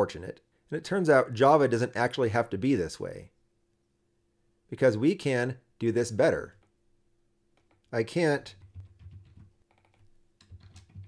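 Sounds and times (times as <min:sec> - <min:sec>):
typing on computer keyboard: 0:08.6 - 0:11.0.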